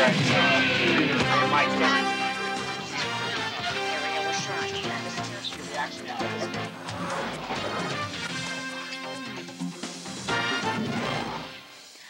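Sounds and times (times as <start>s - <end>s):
news theme music: 0.0s - 11.7s.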